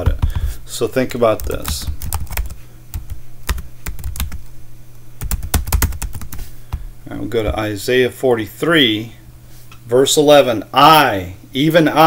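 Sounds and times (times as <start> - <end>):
typing on computer keyboard: 1.4 - 4.4, 5.2 - 6.4.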